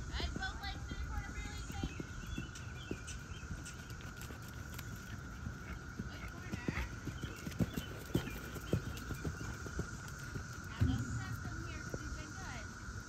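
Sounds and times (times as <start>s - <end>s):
horse hoofbeats on sand: 0.0s - 12.6s.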